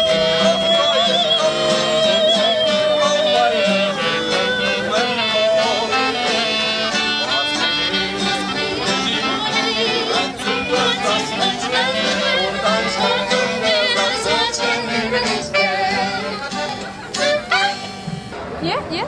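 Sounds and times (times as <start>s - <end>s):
acoustic band playing dance music: 0.0s - 19.0s.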